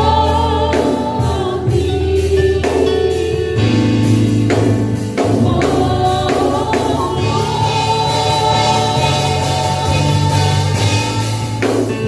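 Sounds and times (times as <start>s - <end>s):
women singing gospel songs: 0.0s - 3.7s, 5.1s - 12.0s
amplified instrumental backing: 0.0s - 12.0s
sharp percussion hits: 4.4s - 12.0s.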